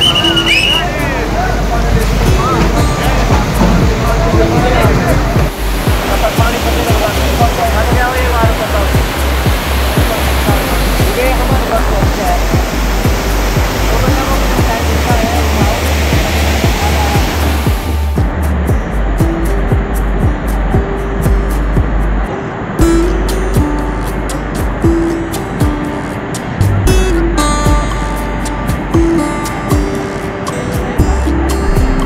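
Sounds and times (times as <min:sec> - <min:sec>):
low music beat: 0:00.0 - 0:32.0
river water rushing: 0:00.0 - 0:32.0.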